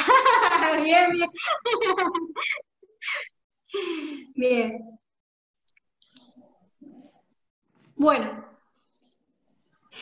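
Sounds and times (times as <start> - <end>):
woman speaking over video call: 0.4 - 1.5, 4.2 - 5.0, 7.9 - 8.7.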